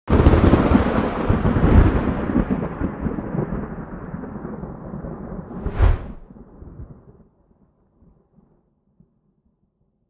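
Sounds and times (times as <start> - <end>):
thunder crack and rumble: 0.1 - 7.0.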